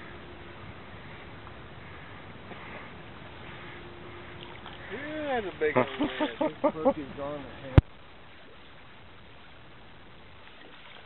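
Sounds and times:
water ambience: 0.0 - 11.0.

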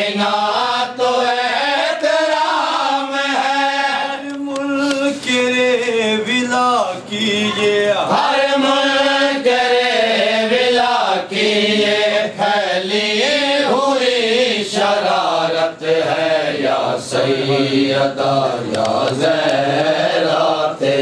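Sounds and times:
man chanting a lament: 0.0 - 21.0.

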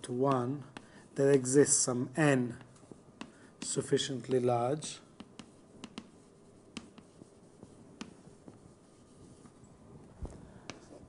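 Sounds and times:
writing taps and scrapes on board: 0.1 - 1.5, 2.5 - 3.8, 5.2 - 9.6, 10.6 - 11.0.

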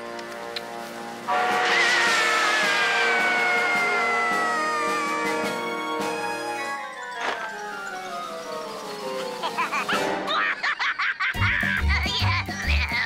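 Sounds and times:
background music: 0.0 - 13.0
descending cartoon whistle: 1.5 - 6.3.

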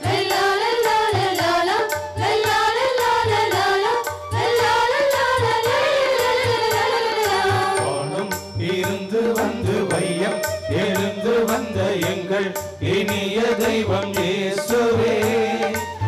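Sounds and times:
steady drum beat: 0.0 - 16.0
held wavering melody: 4.0 - 13.0.

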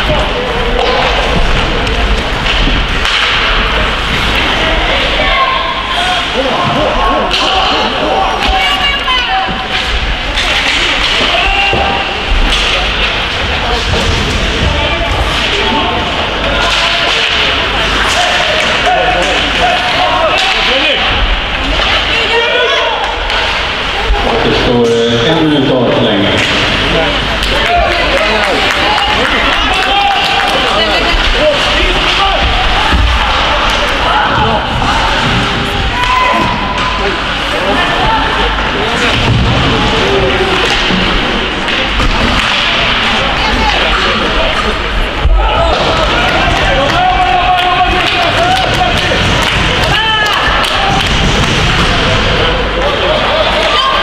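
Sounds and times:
shouting and chatter: 0.0 - 54.0.

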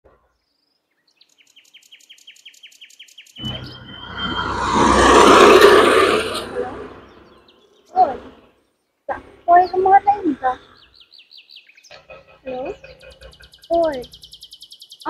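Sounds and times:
loud rushing noise: 3.4 - 7.4
rapid high chirps: 11.9 - 14.6.

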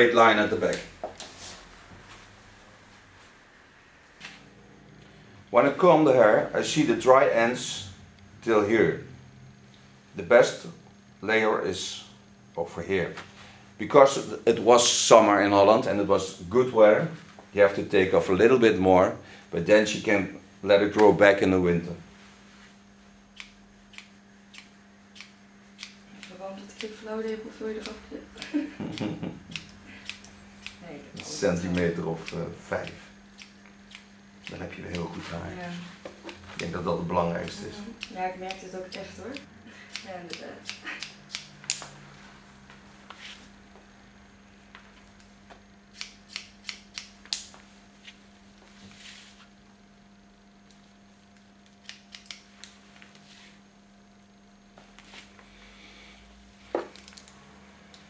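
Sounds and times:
faint steady hum: 0.0 - 58.0
scissors snipping hair: 23.4 - 35.1, 37.4 - 42.0, 45.9 - 47.6, 51.8 - 52.5.

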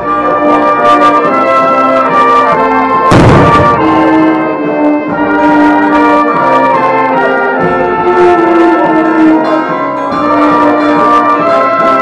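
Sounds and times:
brass band sustained notes: 0.0 - 12.0
church bells ringing: 0.0 - 12.0.

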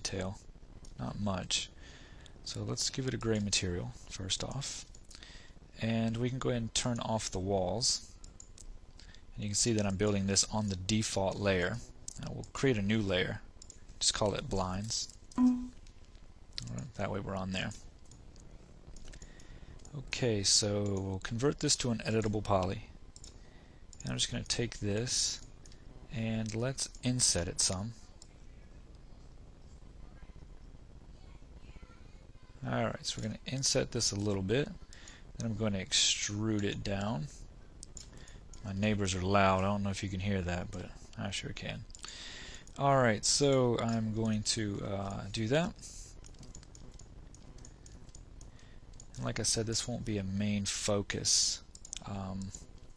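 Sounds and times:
low steady hum: 0.0 - 52.9
keyboard and mouse clicking: 46.2 - 48.2
computer mouse clicks: 46.2 - 49.2, 51.7 - 52.9.

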